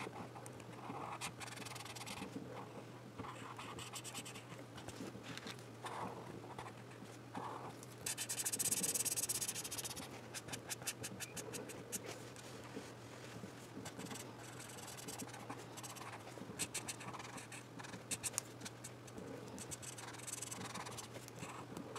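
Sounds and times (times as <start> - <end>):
marker scratching on paper: 0.9 - 2.3, 8.0 - 12.1, 13.8 - 18.8, 19.6 - 21.6.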